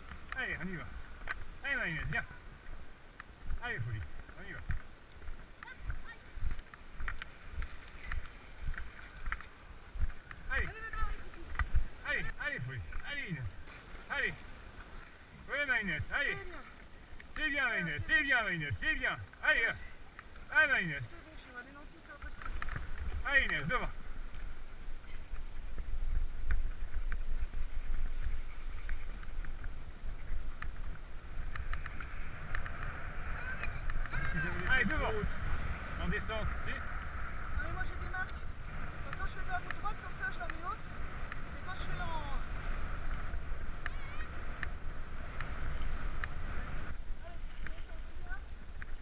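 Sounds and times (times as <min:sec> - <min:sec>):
bike tyres rolling on path: 0:00.0 - 0:49.0
wind rumble: 0:00.0 - 0:49.0.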